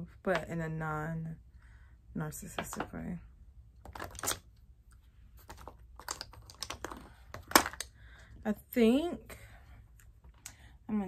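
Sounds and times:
plastic containers clicking: 5.4 - 7.9.

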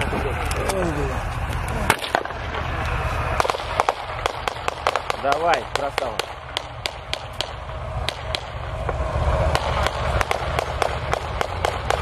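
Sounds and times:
low rumble: 0.0 - 12.0
small-arms gunfire: 3.4 - 8.6, 9.5 - 12.0.

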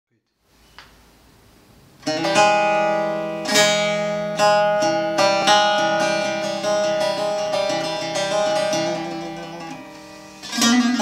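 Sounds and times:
lute chords strummed: 2.0 - 11.0.

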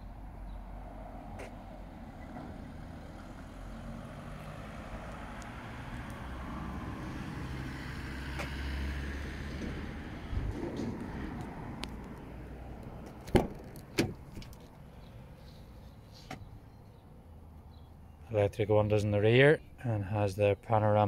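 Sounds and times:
motor vehicle rumble: 0.0 - 20.7.

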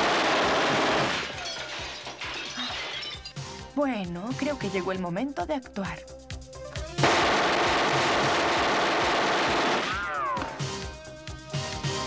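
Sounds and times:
automatic gunfire: 0.0 - 1.4, 7.0 - 10.2
film score music: 3.2 - 12.0.

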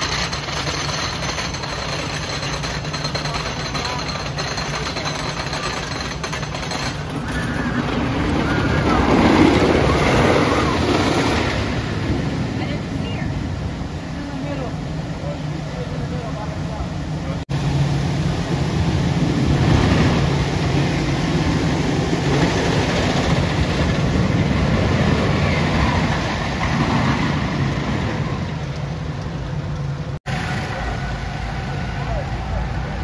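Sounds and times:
low hum of park noise: 0.0 - 33.0
roller coaster rumbling on track: 0.0 - 33.0.

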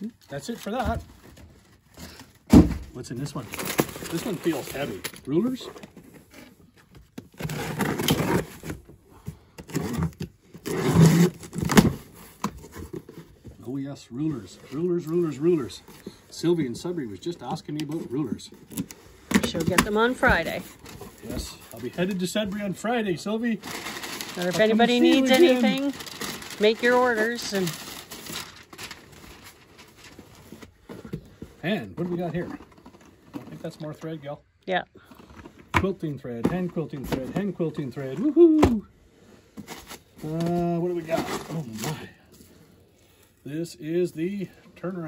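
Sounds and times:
packing paper rustling: 3.2 - 6.1, 17.2 - 30.9, 39.6 - 43.5
cardboard box tape slit and rustling: 7.3 - 8.8, 9.7 - 13.1.

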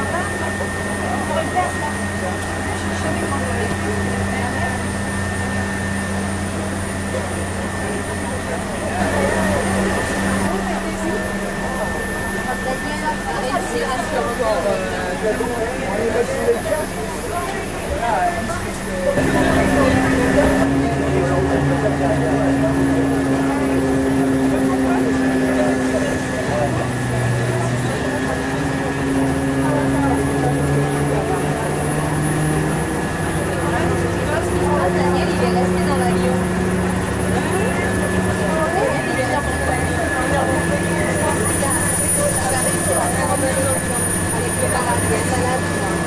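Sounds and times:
vehicle engine hum: 0.0 - 46.0.

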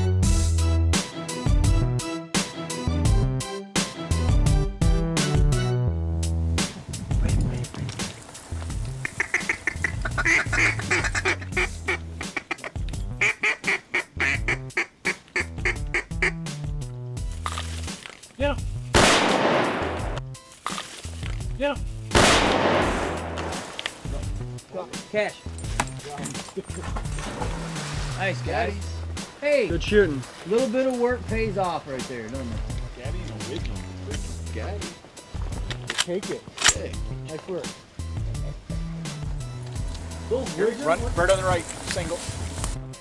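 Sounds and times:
duck quacking: 9.0 - 16.5
shotgun shots echoing: 18.9 - 20.2, 22.1 - 23.9.

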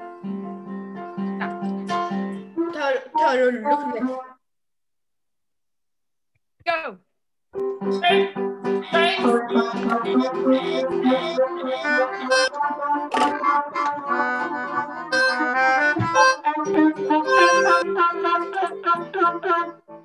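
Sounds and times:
accordion: 7.6 - 20.0
trumpet: 7.9 - 19.8
melodica: 7.9 - 20.0.

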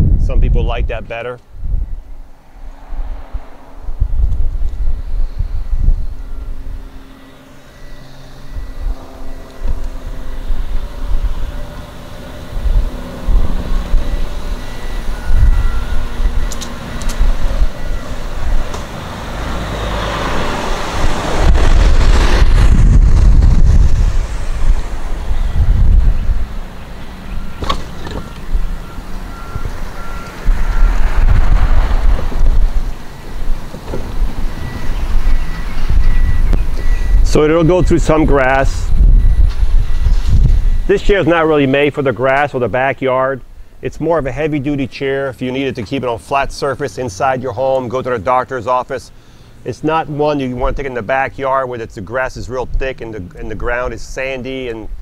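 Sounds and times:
wind buffeting microphone: 0.0 - 41.9
faint beeps: 4.6 - 20.8, 25.1 - 31.2, 34.4 - 42.4
power chair motors humming: 6.0 - 31.2.

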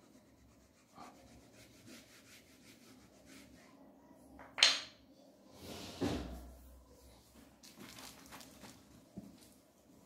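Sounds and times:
eraser rubbing whiteboard: 0.0 - 3.7.

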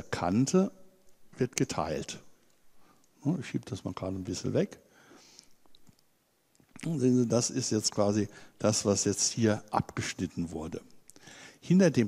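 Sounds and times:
man talking: 0.0 - 2.4, 3.2 - 4.8, 6.7 - 11.0, 11.6 - 12.0.

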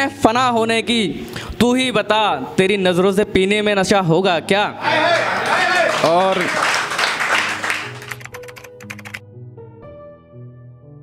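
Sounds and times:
keyboard typing clicks: 8.0 - 9.2.

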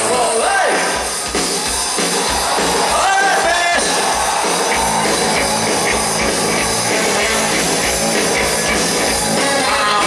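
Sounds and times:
drum kit driving beat: 0.0 - 10.0
bass guitar: 2.4 - 10.0
electric guitars: 2.5 - 10.0.

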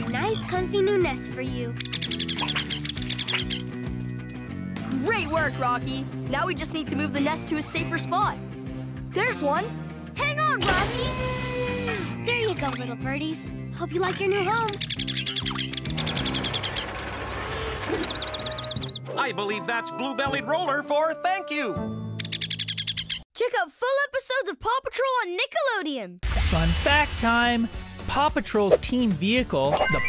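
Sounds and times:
background music: 0.0 - 16.9, 17.8 - 22.9, 26.3 - 30.0
cartoon baby birds cheeping: 0.1 - 4.8, 11.0 - 19.0, 22.2 - 23.3, 29.8 - 30.0.

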